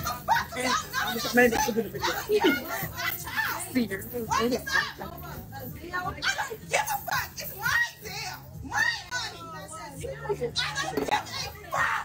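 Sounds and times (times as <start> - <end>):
women arguing loudly: 0.0 - 12.0.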